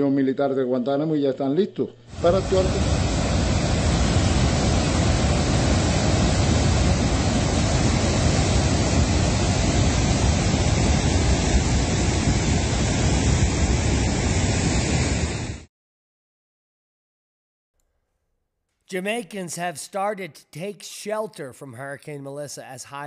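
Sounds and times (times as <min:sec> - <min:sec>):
water rushing through dam spillway: 0:02.1 - 0:13.7.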